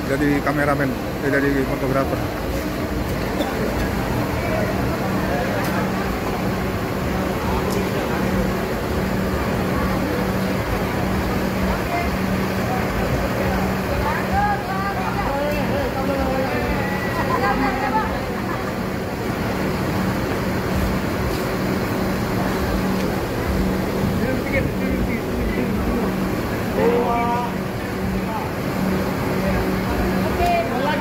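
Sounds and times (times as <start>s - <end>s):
people chatting: 0.0s - 20.4s, 21.5s - 31.0s
coach engine idling: 0.0s - 31.0s.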